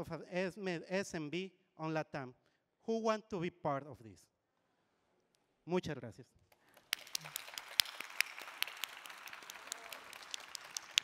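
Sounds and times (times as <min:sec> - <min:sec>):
audience applauding: 0:06.7 - 0:11.0
loud single claps: 0:06.8 - 0:11.0.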